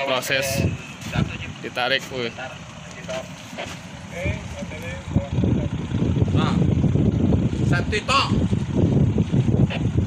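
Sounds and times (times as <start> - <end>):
marine engine rumble: 0.0 - 10.0
wind buffeting microphone: 4.2 - 10.0.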